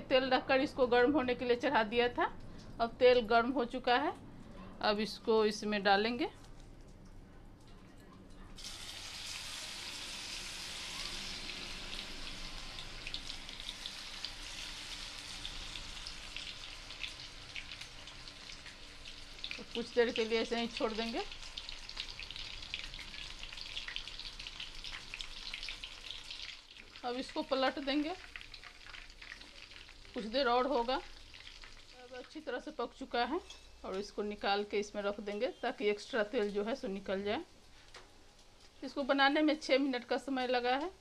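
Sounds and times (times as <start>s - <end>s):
food deep-frying in hot oil: 8.6s - 41.0s.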